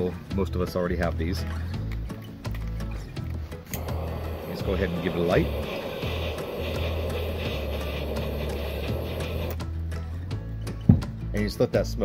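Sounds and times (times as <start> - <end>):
torch flame hissing: 3.7 - 9.6.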